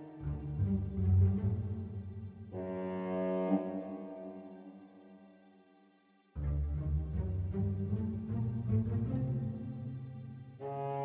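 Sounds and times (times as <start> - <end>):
dark orchestral film score: 0.0 - 11.0.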